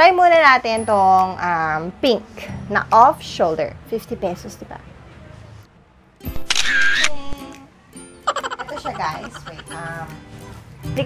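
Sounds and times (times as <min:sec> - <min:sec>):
camera shutter click: 0:06.3 - 0:07.4.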